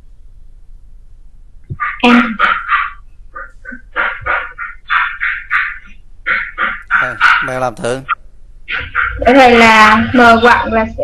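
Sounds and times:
person talking quickly: 6.9s - 8.1s.

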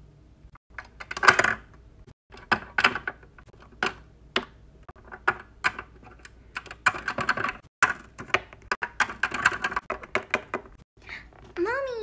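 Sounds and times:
plastic toys clicking on plastic: 0.7s - 10.8s.

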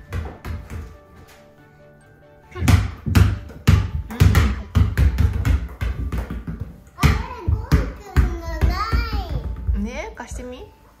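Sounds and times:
basketballs bouncing on wooden floor: 0.0s - 1.0s, 2.6s - 10.4s.

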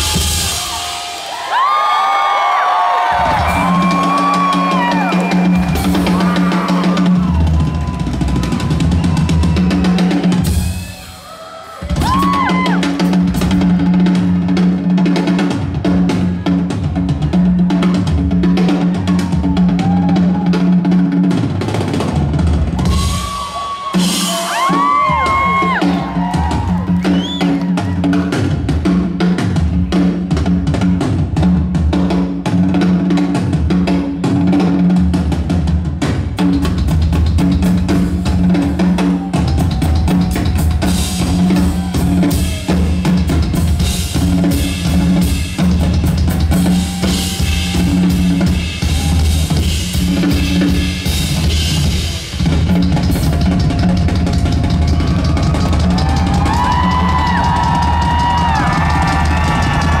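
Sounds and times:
rock drum kit playing: 0.0s - 60.0s.

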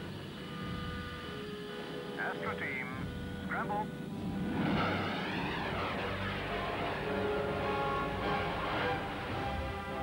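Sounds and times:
jet engine whine and rumble: 0.0s - 9.8s.

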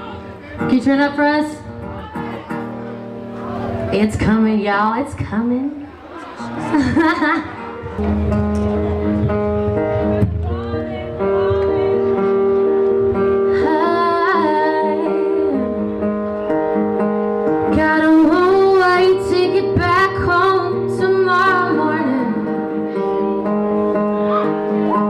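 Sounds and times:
strummed acoustic guitar: 0.0s - 4.3s, 6.0s - 25.0s
woman singing: 13.5s - 16.0s, 17.7s - 23.6s.

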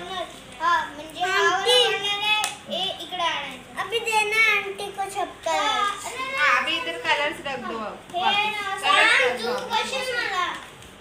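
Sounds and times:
young children talking: 0.0s - 10.8s.

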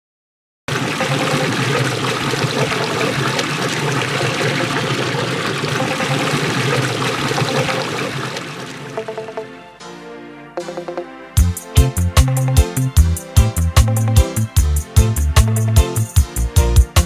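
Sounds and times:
water gushing into concrete basin: 0.7s - 9.0s.

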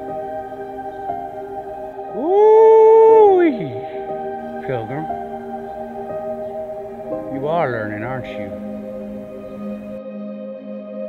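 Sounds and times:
long rising vocal call: 0.0s - 10.0s.

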